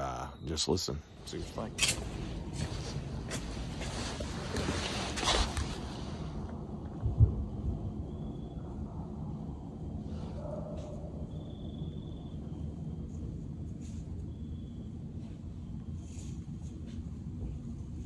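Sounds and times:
steady low rumble: 0:00.0 - 0:18.0
low thump: 0:07.0 - 0:07.8.

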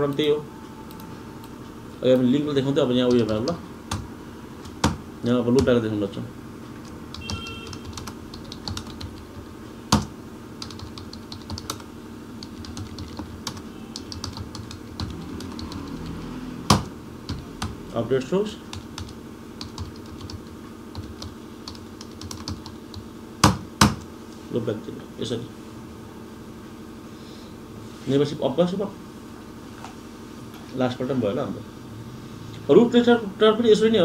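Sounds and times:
computer keyboard typing: 0:02.1 - 0:05.0, 0:06.8 - 0:17.9, 0:18.6 - 0:24.1.

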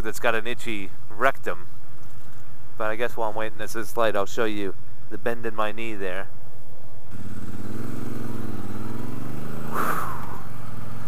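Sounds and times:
motorcycle engine pulling away: 0:07.1 - 0:11.0.

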